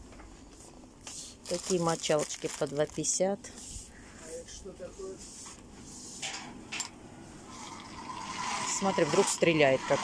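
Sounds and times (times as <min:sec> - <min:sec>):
hand-crank blower fan whirring: 0:06.2 - 0:10.0.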